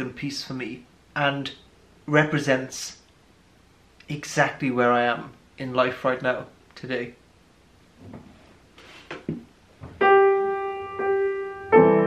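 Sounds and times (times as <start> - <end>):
upright piano playing: 10.0 - 12.0.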